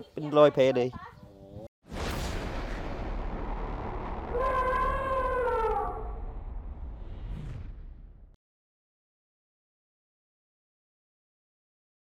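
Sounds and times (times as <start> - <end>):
boom into low rumble: 1.9 - 8.4.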